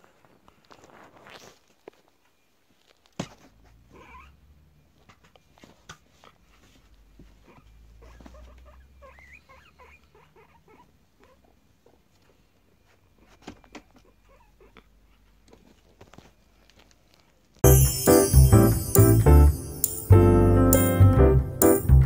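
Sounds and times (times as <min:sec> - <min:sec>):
guinea pig squeaks: 0:02.2 - 0:04.4, 0:07.3 - 0:16.9
guinea pig rumbling purr: 0:03.3 - 0:04.5, 0:06.5 - 0:12.4, 0:13.9 - 0:16.0.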